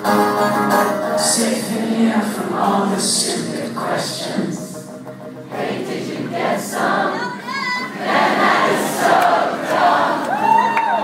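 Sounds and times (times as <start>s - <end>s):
acoustic guitar: 0.0s - 7.5s
audience singing along: 1.0s - 11.0s.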